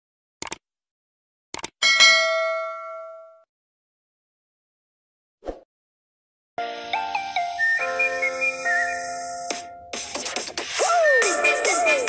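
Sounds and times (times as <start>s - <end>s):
notification bell ding: 1.8s - 3.4s.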